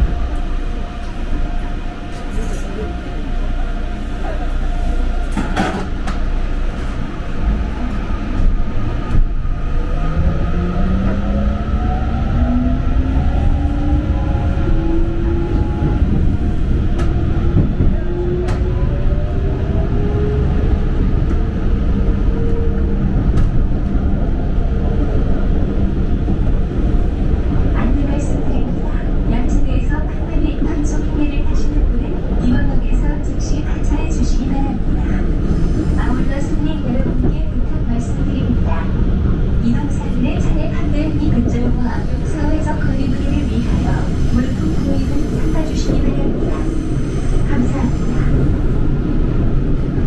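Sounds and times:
wheels rumbling on rail: 0.0s - 50.0s.

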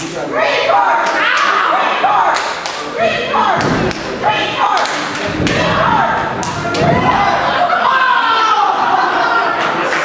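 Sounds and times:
shouting voices: 0.0s - 10.0s.

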